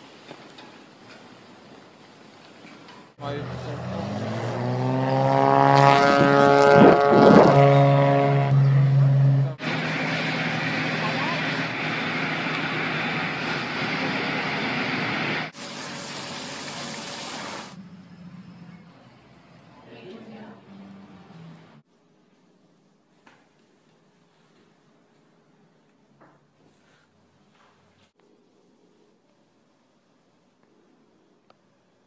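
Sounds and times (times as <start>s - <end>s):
outdoor background sound: 0.0s - 32.0s
propeller engine running up: 5.3s - 16.2s.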